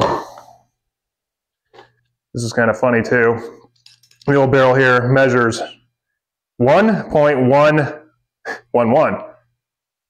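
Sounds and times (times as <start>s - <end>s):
man speaking: 2.4s - 5.9s.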